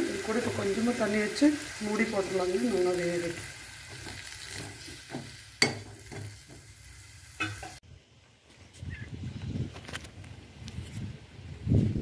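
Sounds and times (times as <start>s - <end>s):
faint sizzle: 0.0s - 7.8s.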